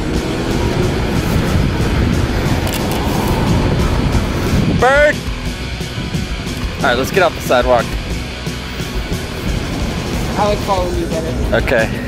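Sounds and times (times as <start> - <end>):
music playing: 0.0 - 12.0
scooter rumbling on pavement: 0.0 - 12.0.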